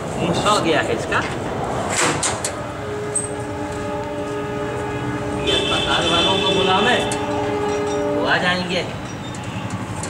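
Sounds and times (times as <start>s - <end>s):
train horn chord: 2.6s - 8.7s.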